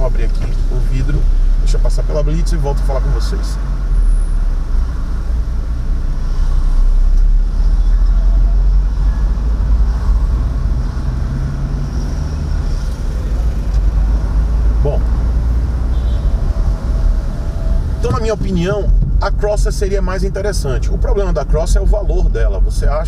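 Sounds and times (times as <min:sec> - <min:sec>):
car engine and tyres rumbling: 0:00.0 - 0:23.0.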